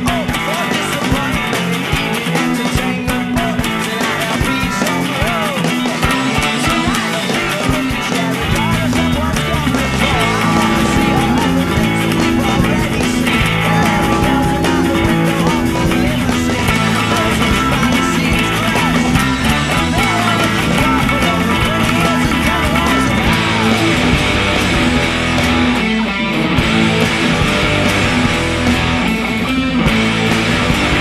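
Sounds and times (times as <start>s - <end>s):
electric guitar: 0.0s - 31.0s
rock backing track with drums: 0.0s - 31.0s
low bass line: 9.6s - 25.7s.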